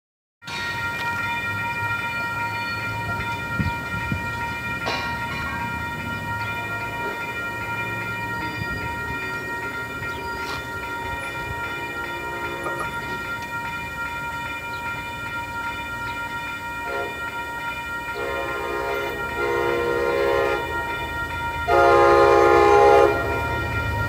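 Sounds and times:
steady high tones: 0.4 - 24.0
train low rumble: 0.5 - 24.0.

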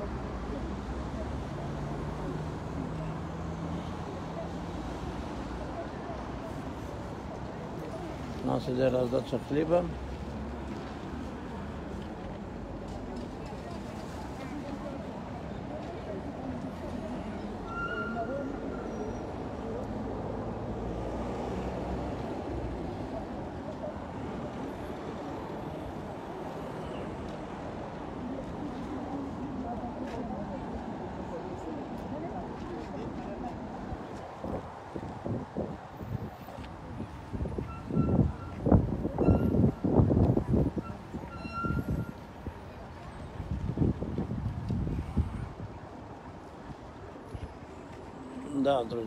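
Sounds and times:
crowd chatter: 0.0 - 49.0
street traffic: 0.0 - 49.0.

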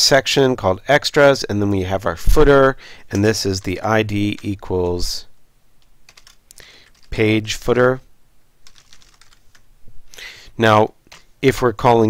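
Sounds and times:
keyboard typing: 3.1 - 5.2, 5.8 - 7.2, 8.6 - 9.7.

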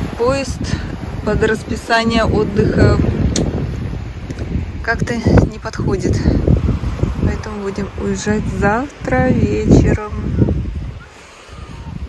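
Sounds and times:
sea surf on pebble beach: 0.0 - 12.0
wind buffeting microphone: 0.0 - 12.0.

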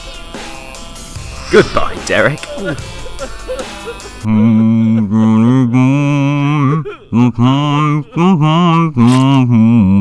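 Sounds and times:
deep male voice laughing: 2.4 - 10.0.

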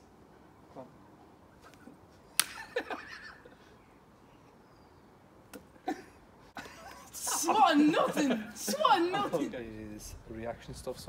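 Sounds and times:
hand slapping hand: 1.6 - 2.7.

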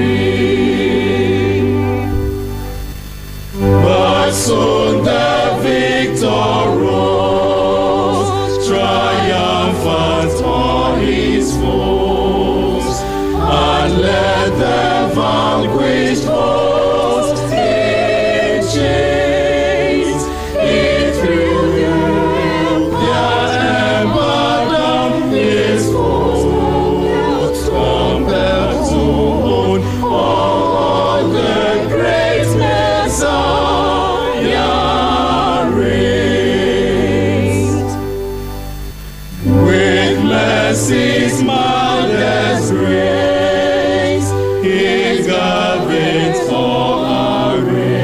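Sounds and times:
group singing a hymn: 0.0 - 48.0.

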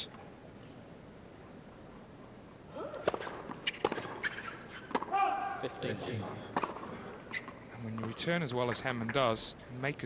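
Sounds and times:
tennis ball bouncing on court: 3.0 - 5.2, 6.5 - 8.2.

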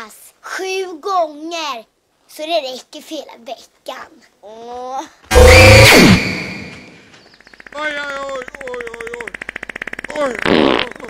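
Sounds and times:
rasping fart-like buzz: 9.2 - 11.0.

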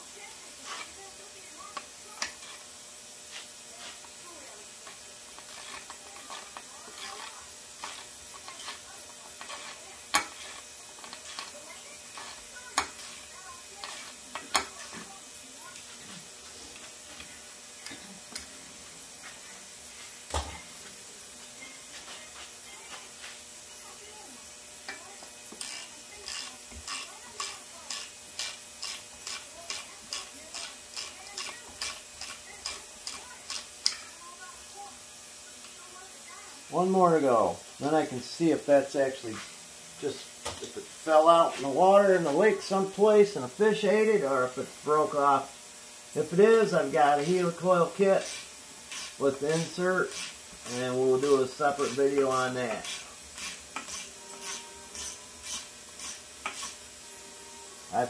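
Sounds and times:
ratchet wrench clicking: 0.0 - 18.5, 21.8 - 38.7, 41.2 - 57.0.

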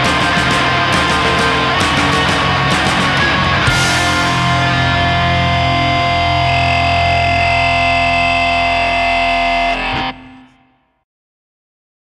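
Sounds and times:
high whine: 0.0 - 10.8
distorted guitar and bass chord: 0.0 - 10.9.

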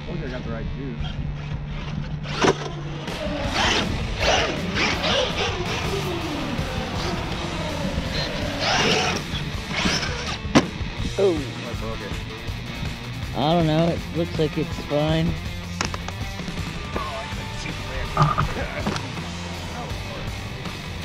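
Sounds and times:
background music: 0.0 - 21.0
electric motor revving: 1.7 - 10.6
sharp knocks: 10.4 - 10.8.

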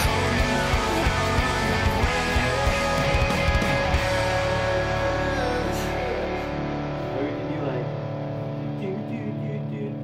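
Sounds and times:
distorted electric guitars: 0.0 - 10.0.

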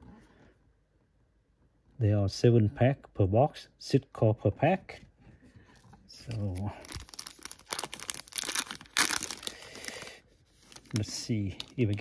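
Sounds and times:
foil pack tearing and crinkling: 6.3 - 10.1.

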